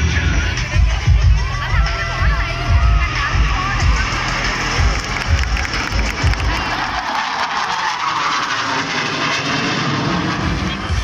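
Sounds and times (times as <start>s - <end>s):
background music with bass beat: 0.0s - 7.8s
jet roar overhead: 2.4s - 11.0s.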